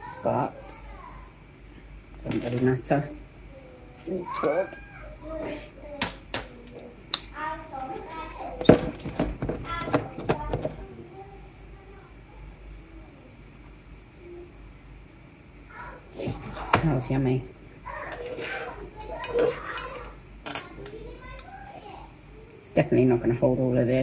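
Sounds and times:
plastic handling: 0:08.6 - 0:10.9.

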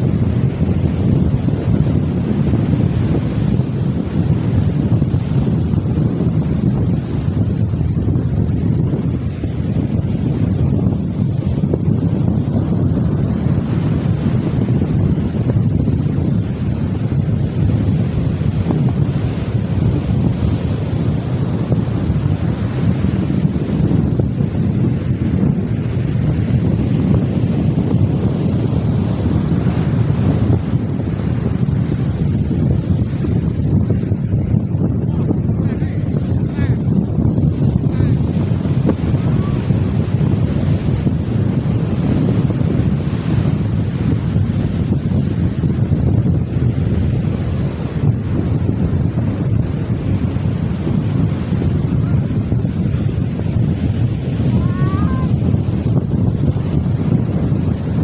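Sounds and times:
surf breaking on beach: 0:00.0 - 0:58.0
wind buffeting microphone: 0:00.0 - 0:58.0.

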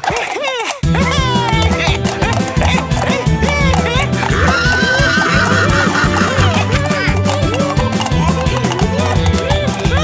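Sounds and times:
background music with steady beat: 0:00.8 - 0:10.0
cartoon horse neighing: 0:01.0 - 0:08.7.

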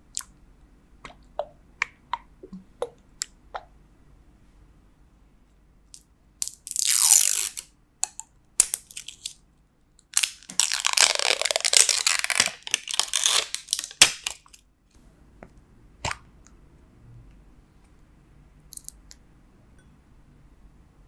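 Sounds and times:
plastic shrink-wrap crinkling: 0:10.2 - 0:14.6.

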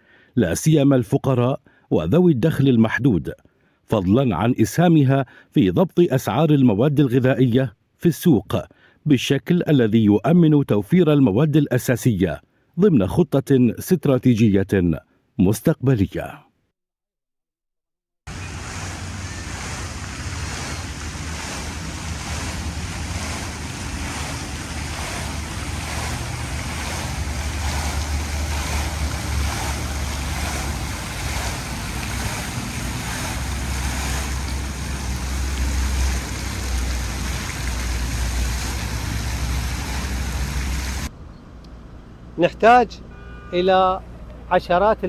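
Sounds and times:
fountain water splashing: 0:18.3 - 0:41.1
wind rumbling on microphone: 0:18.3 - 0:41.4.

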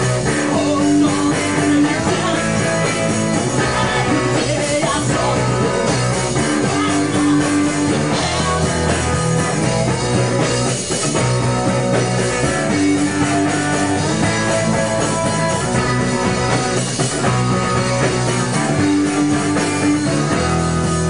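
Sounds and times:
drum kit: 0:00.0 - 0:21.0
electric guitar: 0:00.0 - 0:21.0
rock band playing live: 0:00.0 - 0:21.0.

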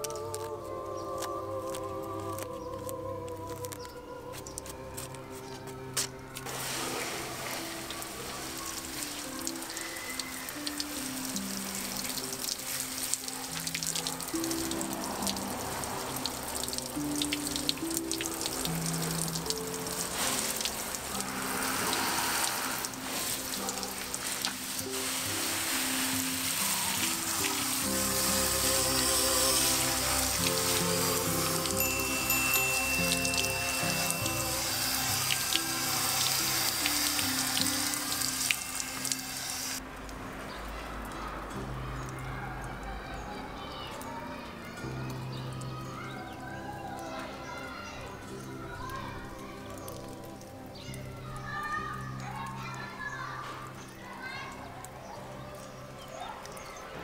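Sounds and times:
background music: 0:00.0 - 0:40.1, 0:43.8 - 0:57.0
hose spraying water on leaves: 0:00.0 - 0:41.6.

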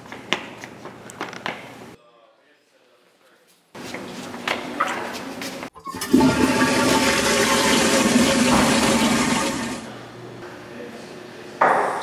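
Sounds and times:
toilet flushing: 0:05.8 - 0:09.9.

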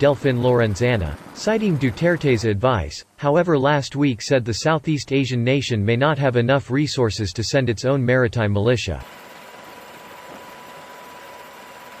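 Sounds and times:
steady background hiss: 0:00.0 - 0:09.0.

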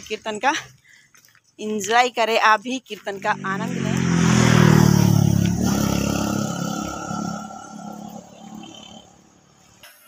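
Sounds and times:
vehicle engine passing: 0:03.2 - 0:09.8.

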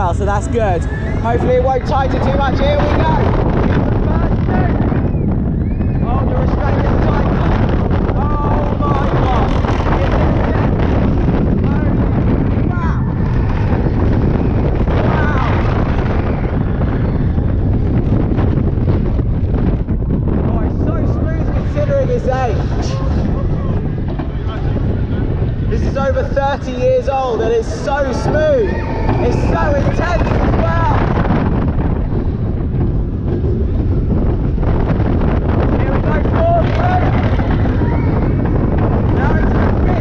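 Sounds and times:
roller coaster rumbling on track: 0:00.0 - 0:40.0
wind buffeting microphone: 0:00.0 - 0:40.0
riders yelling: 0:27.4 - 0:31.1, 0:35.8 - 0:38.2.

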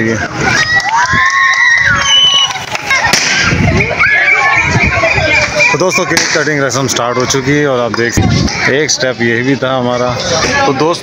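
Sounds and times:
guests' voices: 0:00.0 - 0:11.0
confetti cannon popping: 0:02.6 - 0:03.5.

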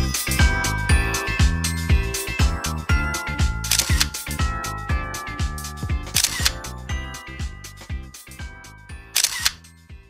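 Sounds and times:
background music with kick drums: 0:00.0 - 0:10.0.

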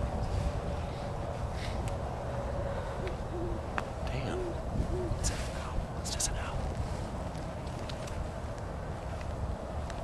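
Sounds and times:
steady low rumble: 0:00.0 - 0:10.0
faint low hoots: 0:02.6 - 0:05.7.

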